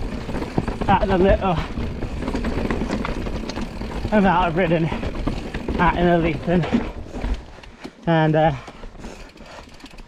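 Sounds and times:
bike rattling clicks and knocks: 0.0 - 10.0
bike tyres rumbling over stones: 0.0 - 10.0.

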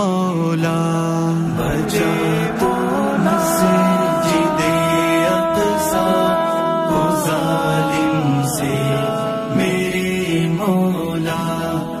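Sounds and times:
person singing long held notes: 0.0 - 12.0.

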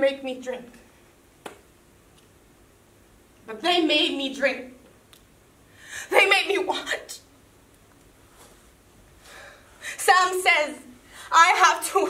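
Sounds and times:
woman breathing: 5.7 - 6.1, 9.2 - 10.0, 11.0 - 11.3.

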